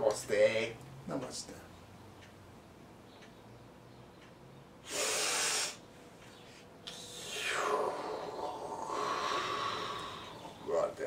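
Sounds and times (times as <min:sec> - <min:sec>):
person blowing exhale: 0:04.8 - 0:05.8, 0:08.9 - 0:10.5.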